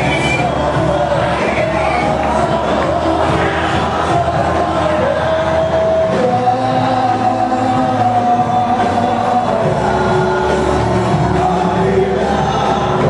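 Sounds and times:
sustained instrumental accompaniment: 0:00.0 - 0:13.0
voices singing held notes: 0:00.0 - 0:13.0.

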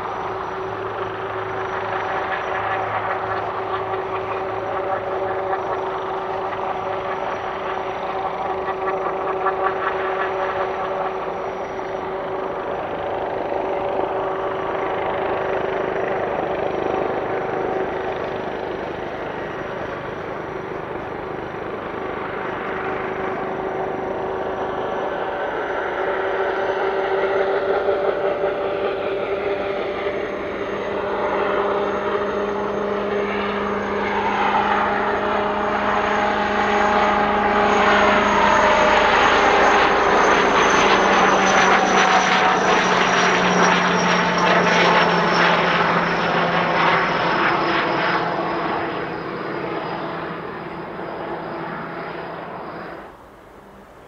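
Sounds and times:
helicopter engine whine: 0:00.0 - 0:54.0.

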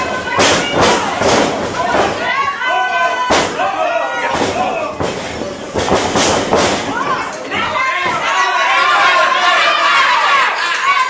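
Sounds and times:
voices shouting: 0:00.0 - 0:05.0, 0:06.9 - 0:11.0.

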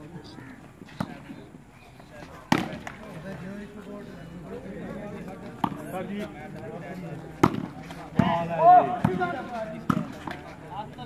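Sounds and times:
crowd voices and shouts: 0:01.9 - 0:11.0.

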